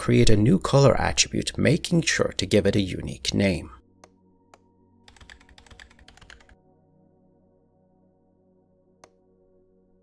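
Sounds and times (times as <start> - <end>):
computer keyboard typing: 5.1 - 6.6.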